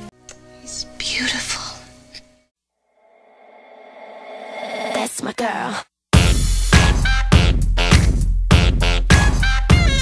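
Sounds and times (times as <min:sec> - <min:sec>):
quiet music with held tones: 0:00.0 - 0:02.5
soft whispering: 0:00.7 - 0:02.2.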